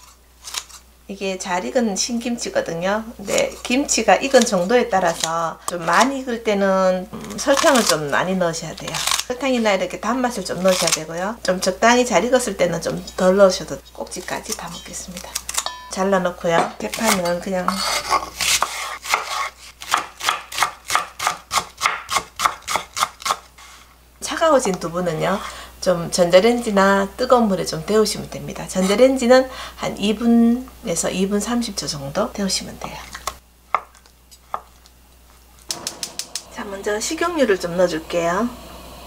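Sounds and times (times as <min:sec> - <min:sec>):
knife chopping on wooden board: 0:17.7 - 0:23.4.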